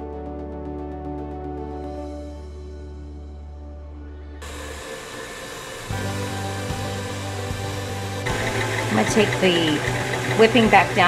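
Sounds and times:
stand mixer running: 4.4 - 11.0.

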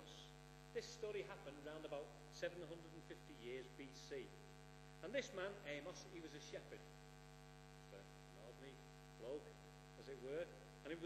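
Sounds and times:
man speaking: 0.0 - 4.4, 5.0 - 6.9, 7.8 - 11.0
electrical mains hum: 0.0 - 11.0.

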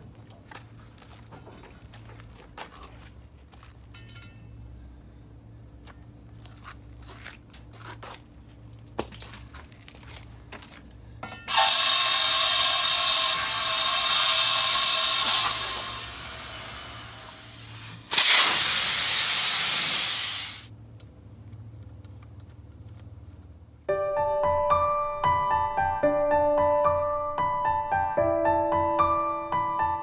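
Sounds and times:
air hissing from tire valve: 11.5 - 20.7.

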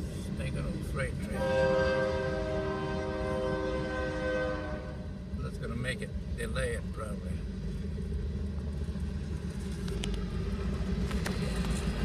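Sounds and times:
low rumble of train: 0.0 - 12.0
locomotive air horn blast: 1.2 - 5.1.

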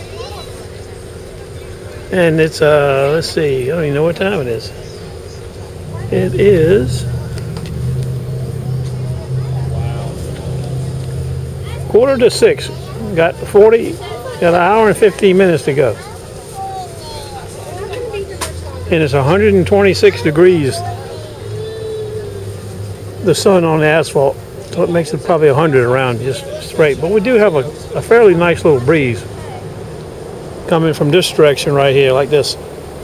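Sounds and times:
motor humming: 0.0 - 30.6
faint voices: 0.0 - 33.0
vehicle engine drone: 0.0 - 33.0.

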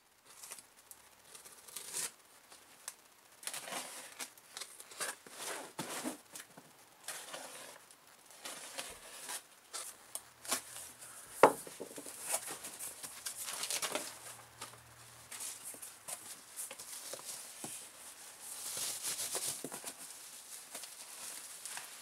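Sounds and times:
bubble wrap crinkling: 0.2 - 22.0
packing tape tearing: 1.3 - 2.2, 12.2 - 14.8
cardboard flaps rustling and scraping: 4.9 - 22.0.

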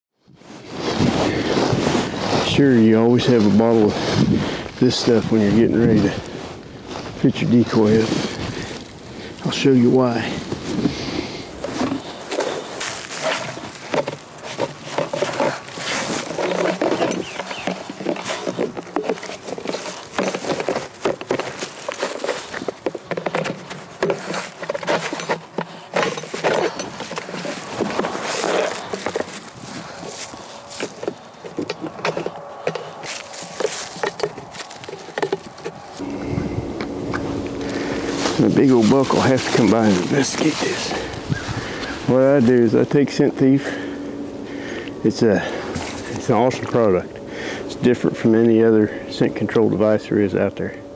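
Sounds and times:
wind noise on microphone: 0.3 - 9.3, 35.8 - 39.6, 40.4 - 42.0
dry leaves crunching underfoot: 0.4 - 48.4
plastic decoy knocking and scraping: 10.5 - 36.0.

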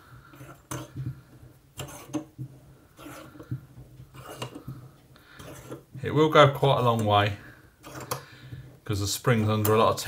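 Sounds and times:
small metal clicks and scrapes: 0.3 - 1.0, 1.8 - 2.3, 3.0 - 4.7, 5.4 - 5.9, 7.8 - 8.2
clamp screw being wound: 7.8 - 8.2.

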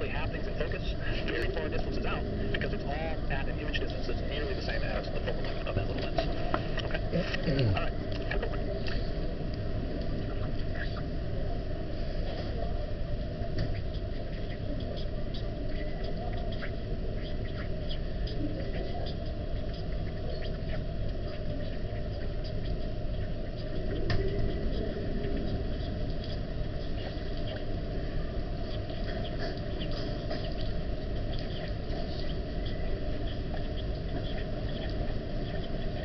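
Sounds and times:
indistinct voices: 0.0 - 36.0
low room rumble: 0.0 - 36.0.

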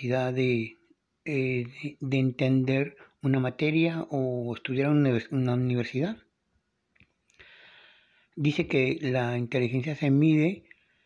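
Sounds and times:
man speaking: 0.0 - 6.3, 8.4 - 10.7
soft intake of breath: 7.3 - 8.4, 10.6 - 11.0.

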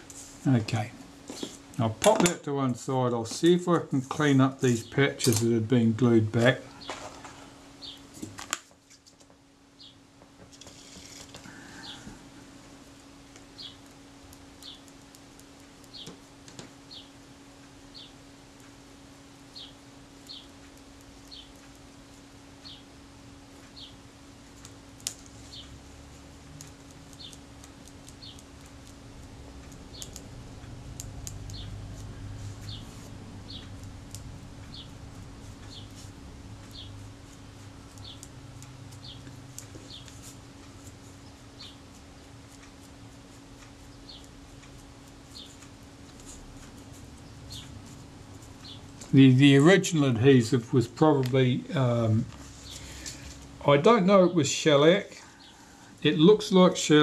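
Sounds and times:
steady electrical hum: 0.0 - 57.0
bird chirping: 7.8 - 8.0, 13.6 - 13.8, 19.5 - 20.5, 31.5 - 31.8, 32.6 - 33.8, 34.7 - 35.0, 35.6 - 36.0, 36.7 - 37.0, 37.8 - 38.3, 39.0 - 40.1, 43.9 - 44.3, 45.3 - 45.6, 48.6 - 48.9.

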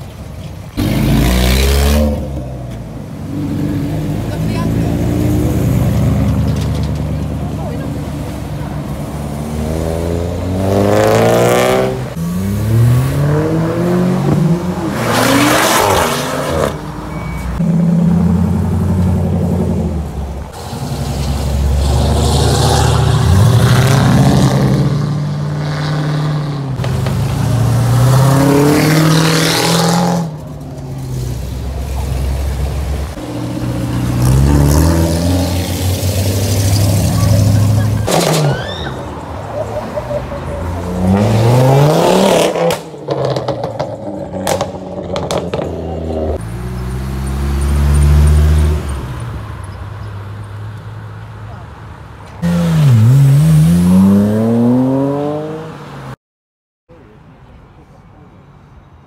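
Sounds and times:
car engines revving past: 0.7 - 51.0, 52.4 - 56.2.

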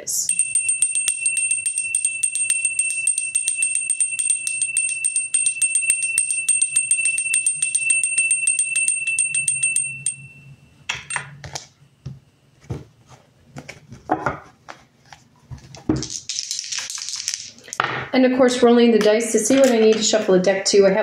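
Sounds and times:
handbell shaken rapidly: 0.3 - 10.3.

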